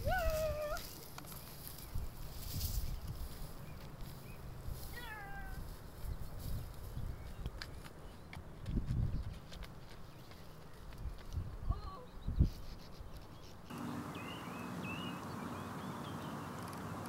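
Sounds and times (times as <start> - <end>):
birds chirping: 0.0 - 17.0.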